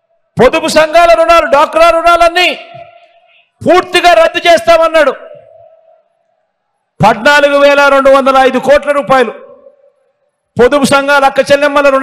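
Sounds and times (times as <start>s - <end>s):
man's voice over public address: 0.3s - 6.0s, 6.9s - 9.9s, 10.5s - 12.0s.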